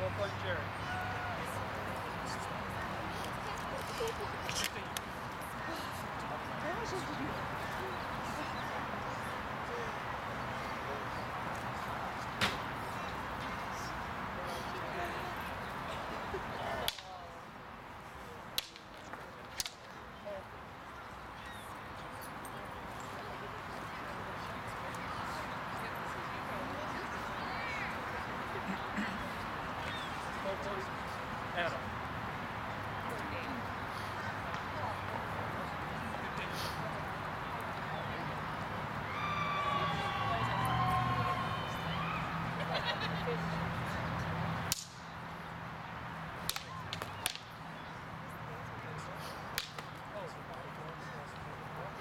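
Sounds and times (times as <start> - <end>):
onlookers chattering: 0.0 - 52.0
outdoor background noise: 0.0 - 52.0.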